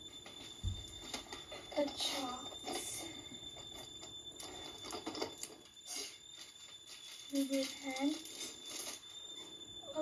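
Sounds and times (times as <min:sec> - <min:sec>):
faint high-pitched whine: 0:00.0 - 0:10.0
plastic packaging crinkling: 0:03.7 - 0:09.3.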